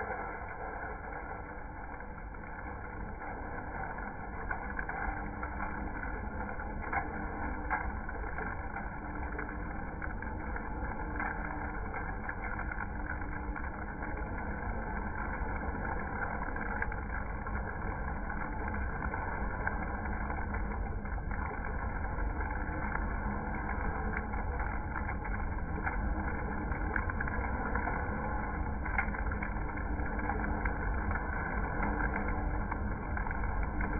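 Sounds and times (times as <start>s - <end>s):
roaster whirring: 0.0s - 33.9s.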